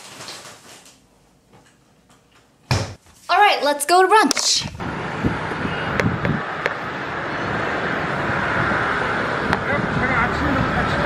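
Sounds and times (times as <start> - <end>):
traffic noise: 4.3 - 11.0.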